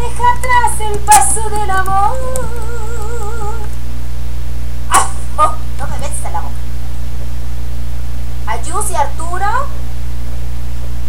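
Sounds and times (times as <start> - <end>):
small dog making sharp sounds: 4.9 - 5.6.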